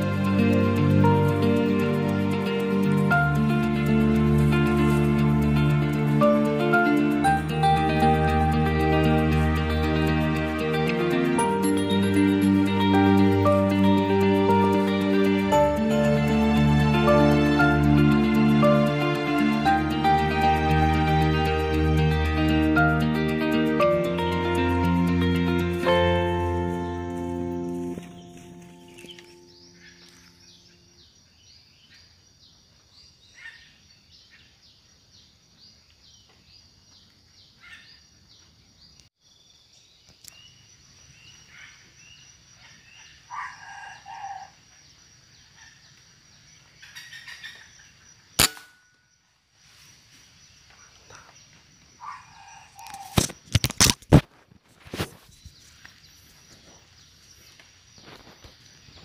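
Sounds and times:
music: 0.0 - 30.5
junglefowl crowing: 43.3 - 44.6
sharp cracks: 48.4 - 49.0.

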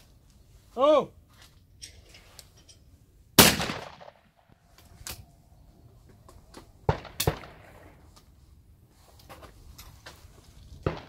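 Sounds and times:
shotgun shot: 3.4 - 4.2, 6.9 - 7.8.

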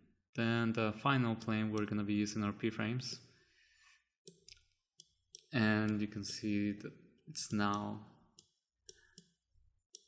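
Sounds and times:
person narrating: 5.6 - 8.1.

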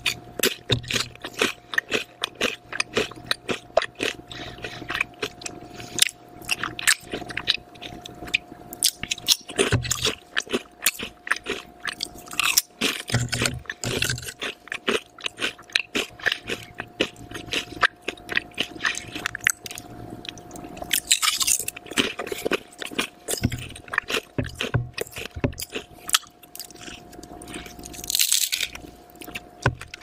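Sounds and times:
chewing crunchy potato chips: 0.0 - 30.0.

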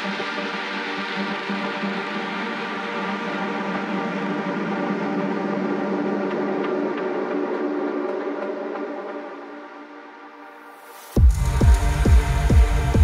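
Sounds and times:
droning synth music: 0.0 - 13.0.

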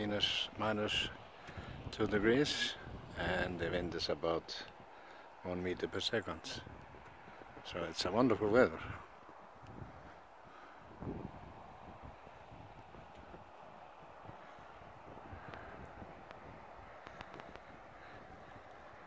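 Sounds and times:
light wind hiss: 0.0 - 19.0
small clicks: 17.0 - 17.7.

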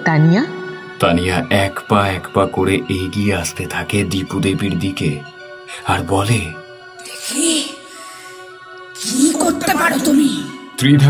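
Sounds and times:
voice: 0.0 - 7.9, 9.0 - 11.0
droning background music: 0.0 - 11.0.

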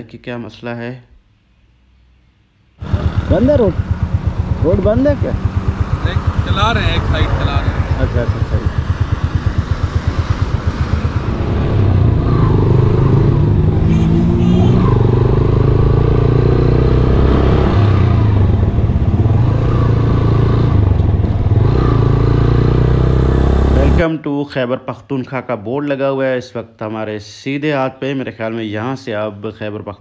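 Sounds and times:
motorcycle engine: 2.8 - 24.0
wind and road noise: 2.8 - 24.0.

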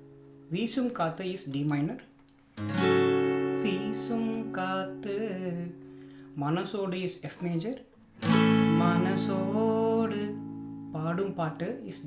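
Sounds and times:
acoustic guitar chord ringing: 0.0 - 0.9, 2.5 - 6.7, 8.0 - 12.0
man singing: 3.6 - 5.8, 8.5 - 12.0.

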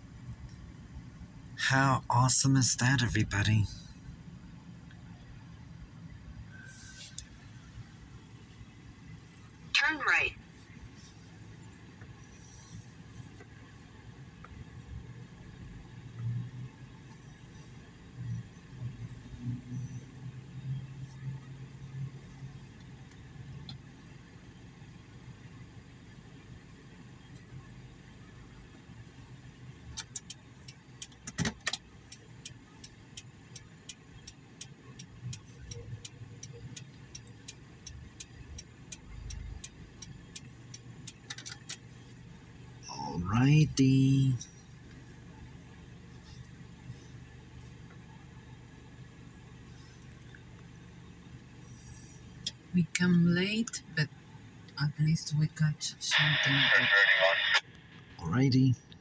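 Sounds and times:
vehicle cabin hum: 0.0 - 59.0
faint evenly spaced ticks: 29.0 - 42.8.

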